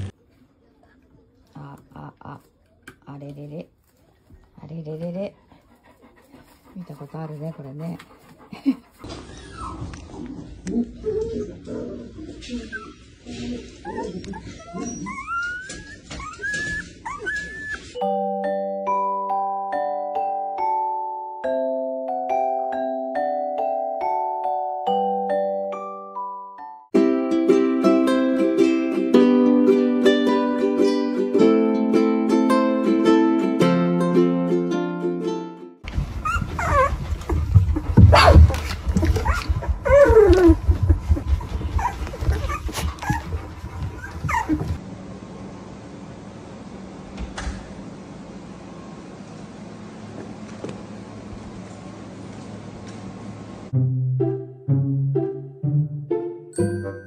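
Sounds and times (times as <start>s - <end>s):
puppy whining: 8.4s - 18.0s, 35.9s - 44.8s.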